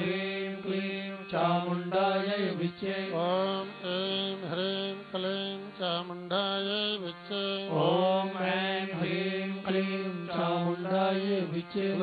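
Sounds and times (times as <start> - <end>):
man chanting a mantra: 0.0 - 12.0.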